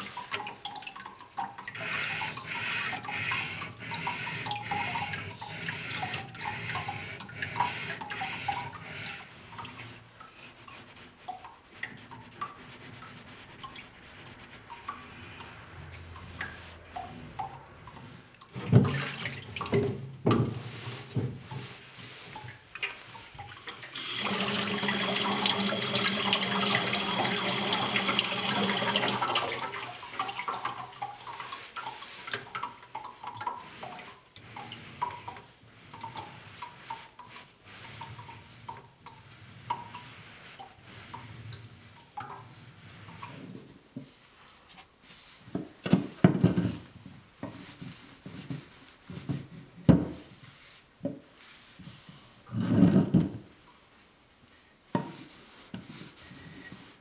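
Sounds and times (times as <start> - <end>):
tap water running into sink: 0.0 - 9.8, 22.9 - 37.2.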